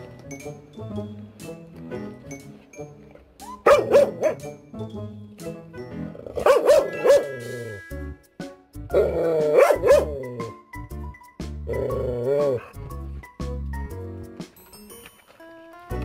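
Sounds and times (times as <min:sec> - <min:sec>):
background music: 0:00.0 - 0:16.0
dog barking: 0:03.6 - 0:04.5, 0:06.4 - 0:07.4, 0:09.0 - 0:10.2.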